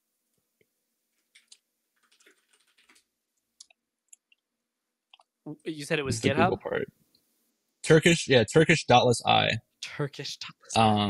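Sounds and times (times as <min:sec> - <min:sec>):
keyboard typing and clicks: 0:01.2 - 0:04.4.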